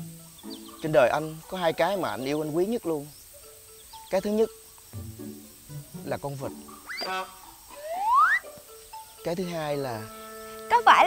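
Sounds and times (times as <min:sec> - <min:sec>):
rising slide whistle: 0:06.9 - 0:08.5.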